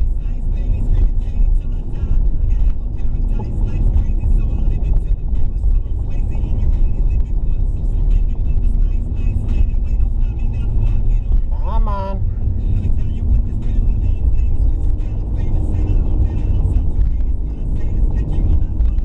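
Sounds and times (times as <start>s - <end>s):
car cabin rumble: 0.0s - 19.0s
music with steady beat: 0.0s - 19.0s.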